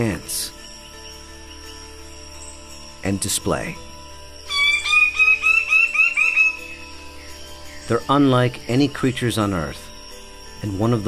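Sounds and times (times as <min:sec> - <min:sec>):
background music: 0:00.0 - 0:11.0
bird calling short rising notes: 0:04.5 - 0:07.3.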